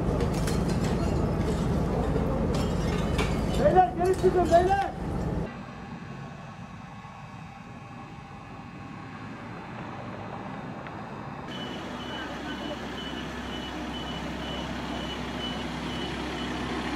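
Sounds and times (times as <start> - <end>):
ambulance engine idling: 11.1 - 16.9
short high beeps: 11.5 - 16.6.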